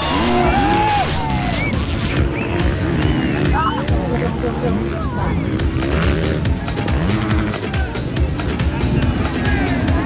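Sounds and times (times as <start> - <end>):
dirt bike engines revving: 0.0 - 10.0
music playing: 0.0 - 10.0.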